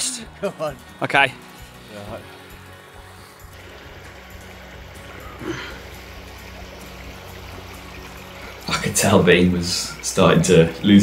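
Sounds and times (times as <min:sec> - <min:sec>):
faint background music: 0:00.0 - 0:11.0
stream trickling over stones: 0:00.0 - 0:11.0.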